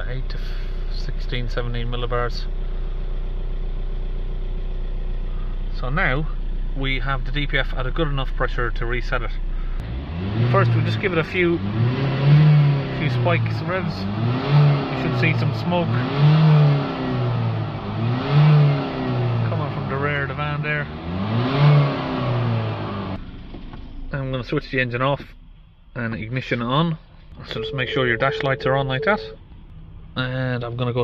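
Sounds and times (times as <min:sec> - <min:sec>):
diesel engine idling: 0:00.0 - 0:09.8
diesel engine revving: 0:09.5 - 0:23.2.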